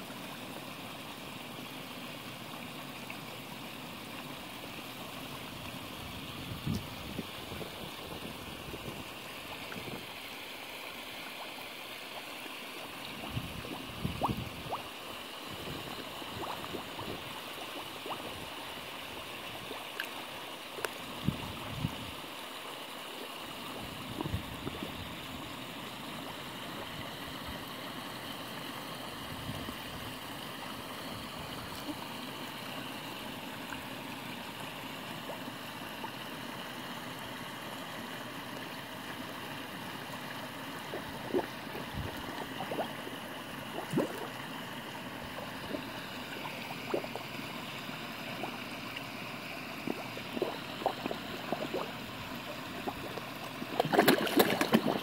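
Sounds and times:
running water gurgling: 0.0 - 55.0
fish splashing at surface: 52.7 - 55.0.

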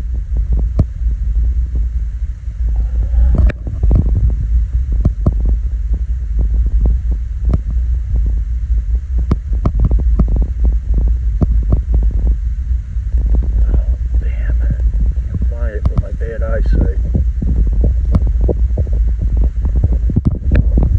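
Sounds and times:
wind on microphone: 0.0 - 20.9.

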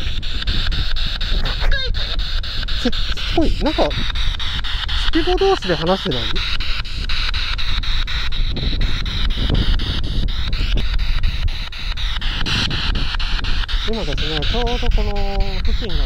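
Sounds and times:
radio static hiss: 0.0 - 16.0
rapid clicks: 0.0 - 16.0
broadcast voices: 1.0 - 16.0.

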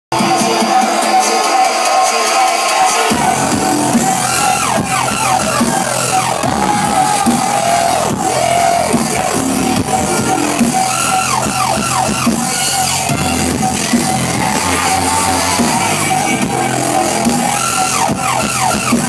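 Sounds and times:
electronic dance music: 0.1 - 19.0
steady bass line: 3.0 - 19.0.

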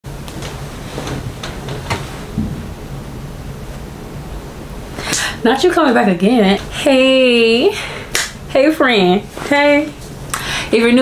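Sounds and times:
low steady hum: 0.1 - 11.0
soft low thump: 1.9 - 2.8.

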